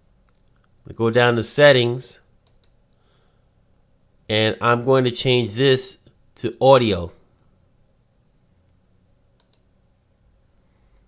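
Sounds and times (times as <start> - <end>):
computer mouse clicks: 0.3 - 0.7, 2.4 - 3.0, 9.4 - 9.7.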